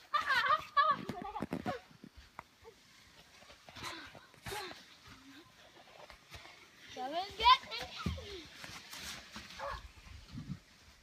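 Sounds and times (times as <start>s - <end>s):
footsteps crunching in snow: 1.0s - 11.0s.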